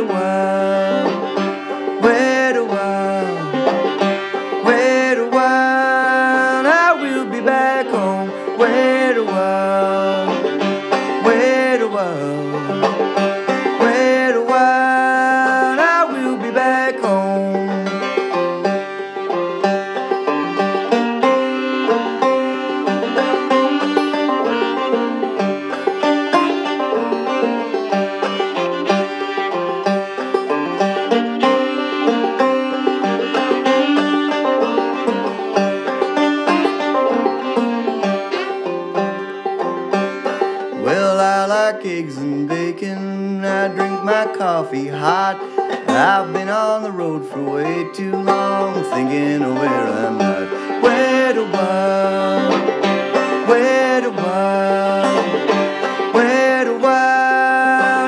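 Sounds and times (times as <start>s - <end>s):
banjo picking: 0.0s - 58.0s
bowed fiddle: 0.0s - 58.0s.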